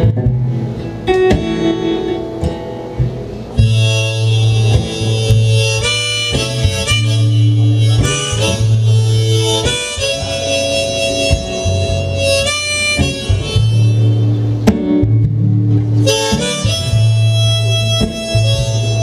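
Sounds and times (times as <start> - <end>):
harmonica chords: 0.0 - 19.0
strummed acoustic guitar: 0.0 - 19.0.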